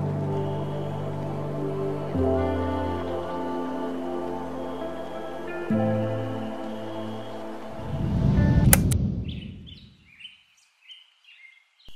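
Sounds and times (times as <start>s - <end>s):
birds chirping: 0.0s - 8.5s, 9.2s - 11.9s
soft background music: 0.0s - 8.9s
low whoosh: 7.6s - 9.9s
sharp clicks: 8.6s - 9.0s.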